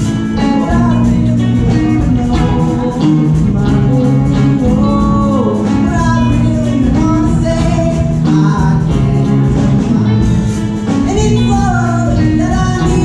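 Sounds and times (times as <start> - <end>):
guitar accompaniment: 0.0 - 13.0
person singing long notes: 0.0 - 13.0.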